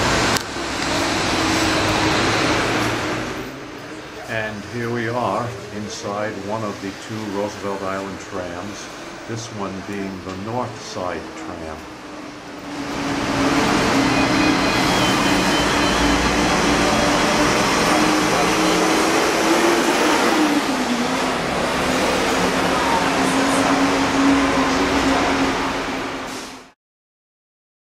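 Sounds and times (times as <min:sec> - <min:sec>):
low mechanical drone: 0:00.0 - 0:26.2
cable car rushing and humming: 0:00.0 - 0:26.8.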